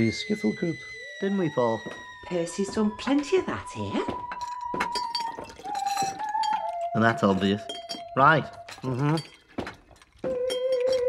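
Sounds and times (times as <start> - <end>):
crockery clinking: 2.6 - 11.0.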